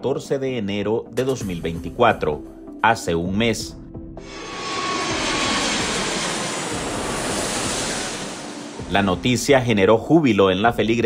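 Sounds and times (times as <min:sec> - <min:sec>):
jet airliner passing: 0:04.2 - 0:10.7.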